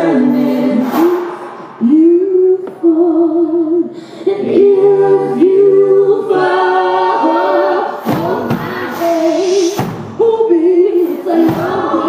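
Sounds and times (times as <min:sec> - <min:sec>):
voices singing in harmony: 0:00.0 - 0:12.0.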